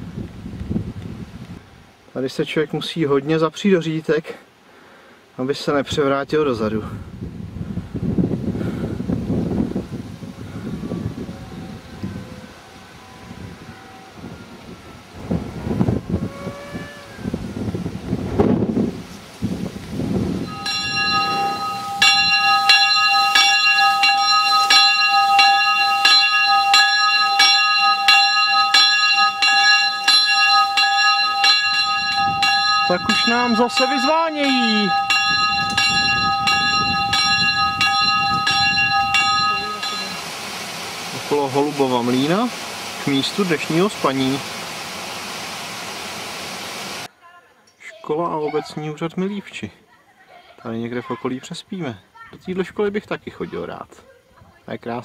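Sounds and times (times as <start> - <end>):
low rumbling noise: 7.1 - 43.0
church bell ringing: 20.4 - 40.3.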